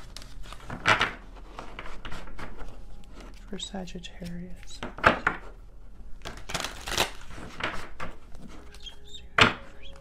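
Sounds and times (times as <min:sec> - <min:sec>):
cards rustling: 0:00.0 - 0:05.0, 0:06.2 - 0:09.1.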